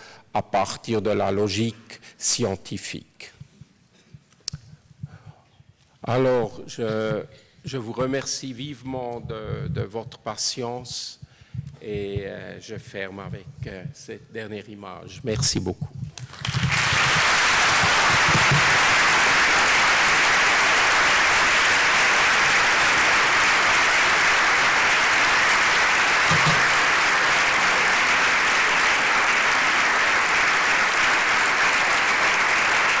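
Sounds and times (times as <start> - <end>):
audience applause: 16.2 - 33.0.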